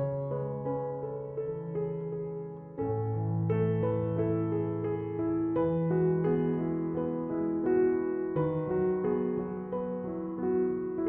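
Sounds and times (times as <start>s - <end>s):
soft slow piano music: 0.0s - 11.0s.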